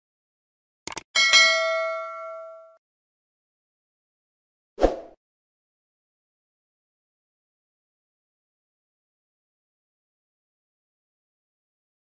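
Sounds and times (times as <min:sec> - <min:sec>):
bell ding: 0:01.2 - 0:02.8.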